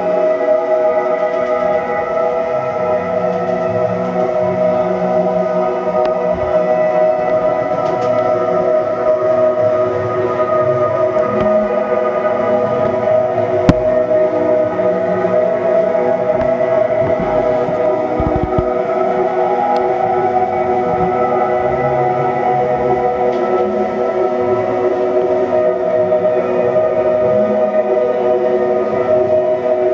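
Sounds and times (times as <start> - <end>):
band playing droning ambient chords: 0.0 - 29.9.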